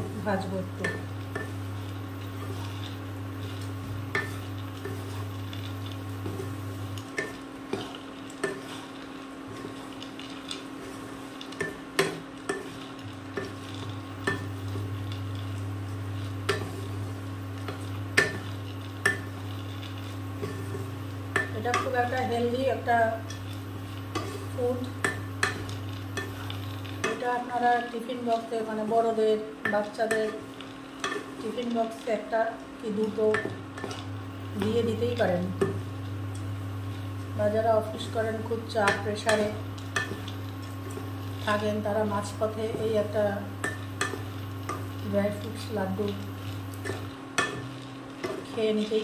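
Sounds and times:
steady low hum: 0.0s - 49.0s
spatula scraping and knocking pan: 0.8s - 27.3s, 38.8s - 45.6s, 46.2s - 48.6s.

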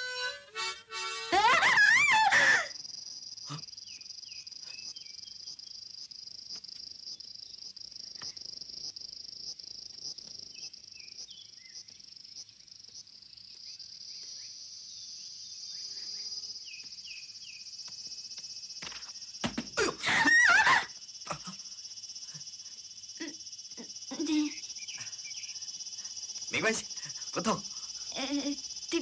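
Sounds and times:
harmonica phrase: 0.0s - 2.7s
high-pitched insect chorus: 0.0s - 29.0s
short insect chirps: 0.0s - 29.0s.

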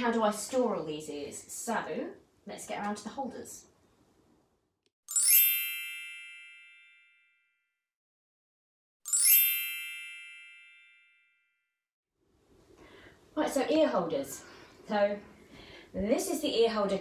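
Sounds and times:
sparkly chime sound effect: 5.1s - 7.3s, 9.1s - 11.3s.

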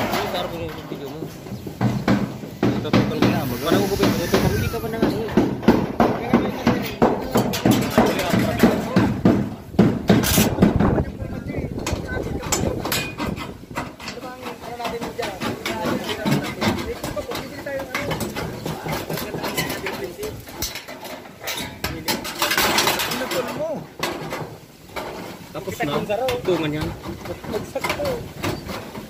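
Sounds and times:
people talking: 0.0s - 1.5s, 2.6s - 9.6s, 10.4s - 13.2s, 14.0s - 20.7s, 21.5s - 23.9s, 25.6s - 28.3s.

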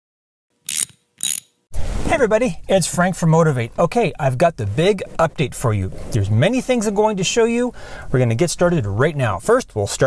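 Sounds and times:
mechanical ratchet clicks: 0.7s - 1.5s.

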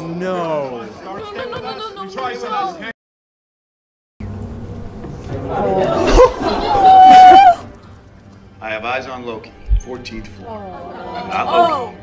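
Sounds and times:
audience chatter: 4.9s - 7.8s
loud drawn-out vocal cry: 5.4s - 7.7s.

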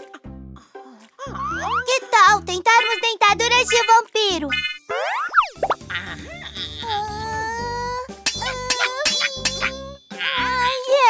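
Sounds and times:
children's background music: 0.0s - 11.0s
cartoon springy boing: 8.2s - 10.2s.

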